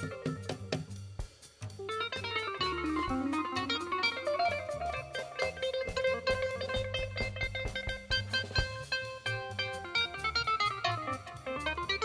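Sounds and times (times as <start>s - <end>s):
drum kit: 0.0s - 12.0s
upright bass: 0.0s - 12.0s
keytar lead melody: 1.8s - 12.0s.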